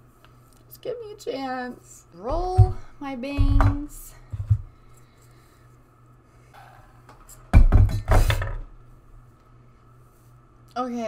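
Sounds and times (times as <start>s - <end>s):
handling noise bumping and rustling: 2.2s - 4.7s.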